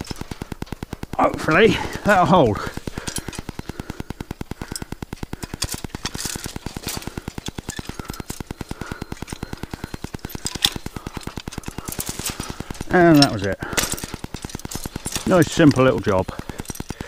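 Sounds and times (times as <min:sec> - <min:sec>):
steady fast ticking: 0:00.0 - 0:17.0.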